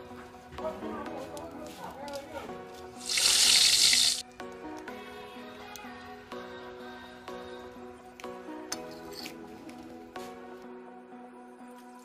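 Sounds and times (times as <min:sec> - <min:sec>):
background music: 0:00.0 - 0:12.0
eggs sizzling in hot oil: 0:03.0 - 0:04.2.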